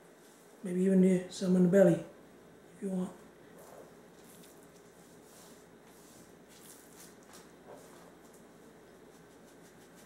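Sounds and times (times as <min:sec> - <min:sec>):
hand rubbing salt into fish: 0:09.0 - 0:10.0.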